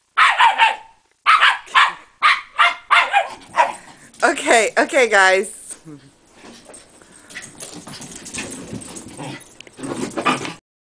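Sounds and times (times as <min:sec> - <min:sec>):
dogs scuffling and scrabbling: 0:02.9 - 0:04.6, 0:06.2 - 0:10.6.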